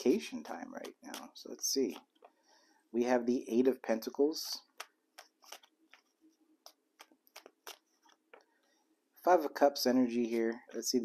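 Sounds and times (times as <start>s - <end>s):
cards being shuffled: 4.7s - 8.5s.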